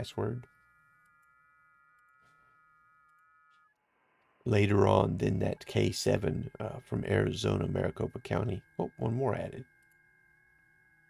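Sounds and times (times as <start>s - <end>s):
faint steady high tones: 0.0s - 11.0s.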